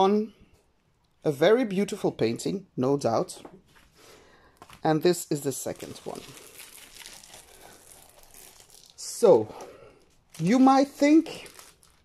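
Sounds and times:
plastic sleeve crinkling: 0:04.5 - 0:12.0.

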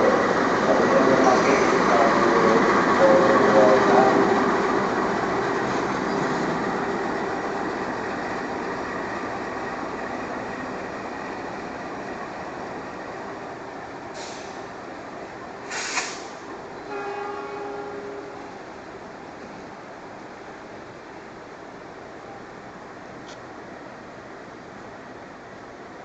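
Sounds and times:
train rolling past: 0:00.0 - 0:26.0.

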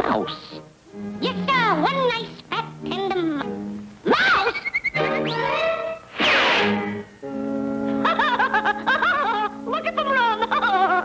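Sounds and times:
cartoon mouse laughing: 0:04.1 - 0:06.0, 0:08.0 - 0:11.0.

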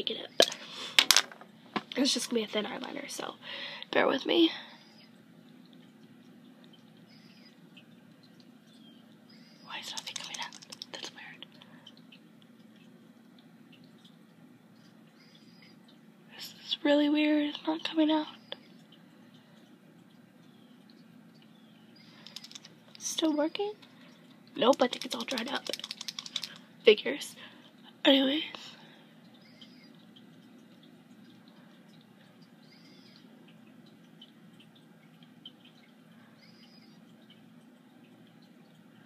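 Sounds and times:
faint small ticks: 0:05.6 - 0:14.2, 0:18.4 - 0:26.7
faint small clicks: 0:22.1 - 0:23.1, 0:23.8 - 0:26.6.

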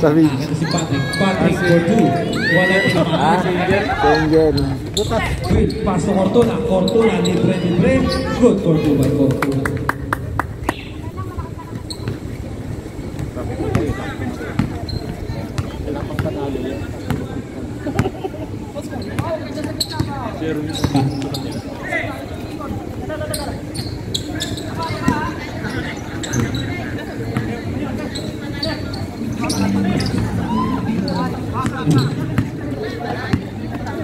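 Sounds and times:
voices of players and onlookers: 0:00.0 - 0:34.0
basketball bouncing on hard court: 0:13.2 - 0:14.8, 0:17.0 - 0:17.3.

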